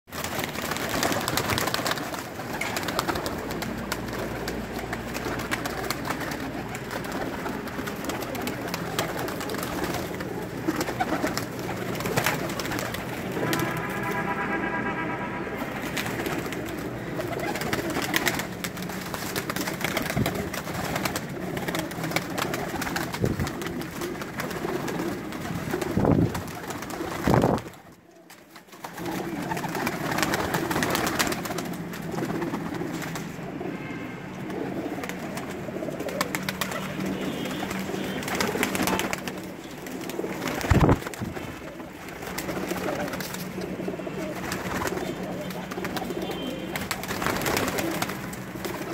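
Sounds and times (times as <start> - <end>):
wings fluttering: 0.1 - 14.4, 15.5 - 33.6, 34.4 - 48.9
pigeons cooing: 0.8 - 13.7, 15.5 - 48.9
held tone with overtones: 13.2 - 16.3.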